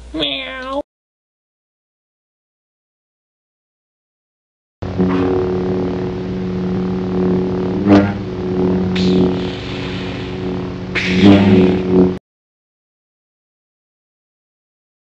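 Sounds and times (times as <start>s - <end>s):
lightsaber electric hum: 4.8s - 12.2s
lightsaber swing and clash hits: 4.8s - 12.2s.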